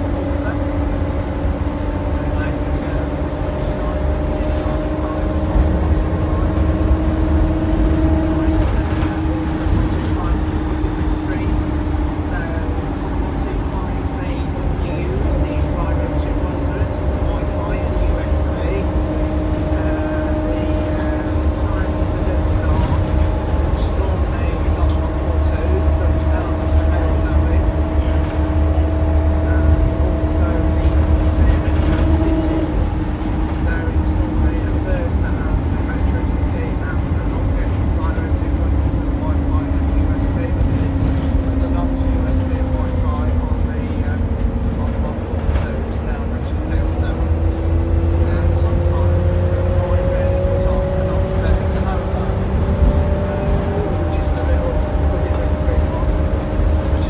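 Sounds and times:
bus engine and road rumble: 0.0 - 57.0
drivetrain whine: 0.0 - 57.0.

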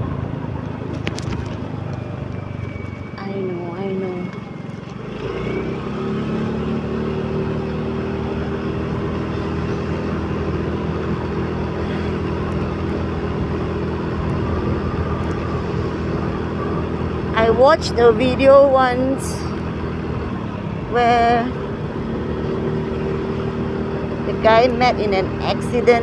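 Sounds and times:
motorbike engine running: 0.0 - 26.0
wind and road rush: 0.0 - 26.0.

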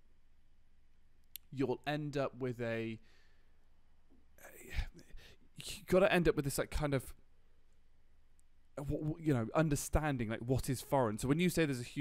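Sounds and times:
person breathing in near microphone: 3.0 - 3.6.

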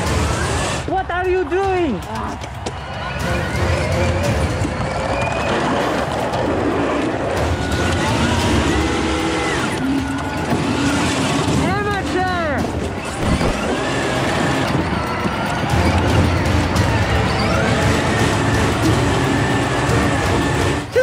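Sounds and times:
voices shouting: 0.0 - 21.0
go-karts driving on wet asphalt: 2.1 - 21.0.

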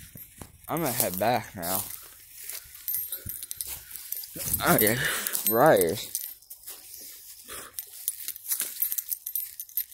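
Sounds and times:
clicks and handling noise: 0.0 - 9.9
footsteps in grassy undergrowth: 0.0 - 9.9.

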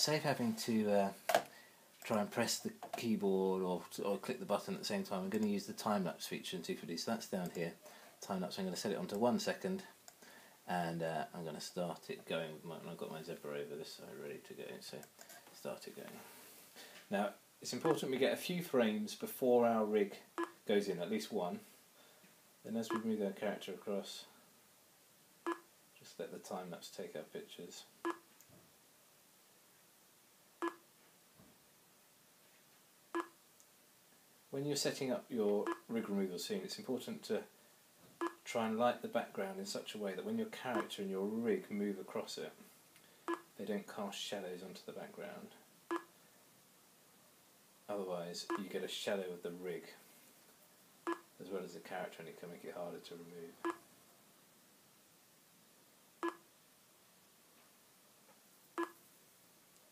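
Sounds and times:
short electronic beeps: 33.2 - 33.4, 56.2 - 56.4.

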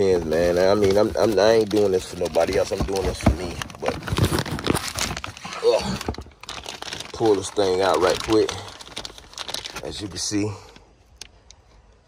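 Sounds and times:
hands rummaging through cardboard box: 0.0 - 10.5
plastic packaging crinkling: 0.0 - 11.4.

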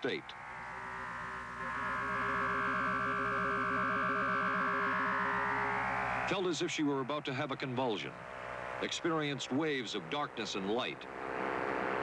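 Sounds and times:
eerie synthesizer music: 0.4 - 7.4.

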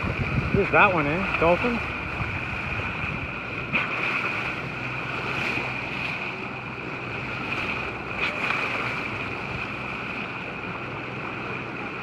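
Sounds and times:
wind noise on microphone: 0.0 - 4.4
water rushing along boat bow: 0.0 - 12.0.

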